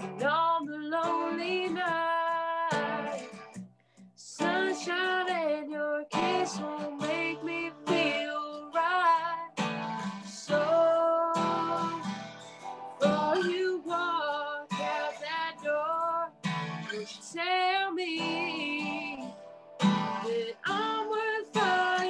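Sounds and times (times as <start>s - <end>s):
woman singing country song: 0.0s - 3.6s, 4.2s - 22.0s
acoustic guitar strummed: 0.0s - 22.0s.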